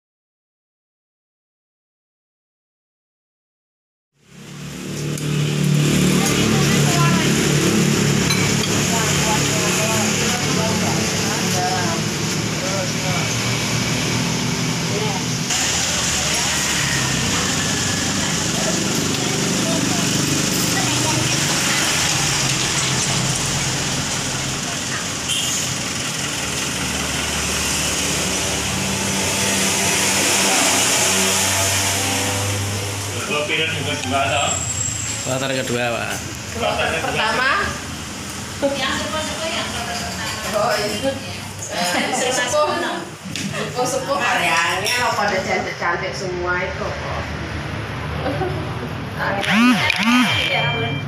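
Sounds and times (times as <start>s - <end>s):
vehicle engine running: 4.2s - 30.4s, 49.2s - 51.0s
people talking: 6.0s - 13.4s, 14.8s - 25.4s, 33.1s - 34.6s, 35.3s - 37.8s, 38.6s - 47.3s, 48.2s - 51.0s
indistinct voices: 49.2s - 51.0s
motor engine humming: 49.4s - 51.0s.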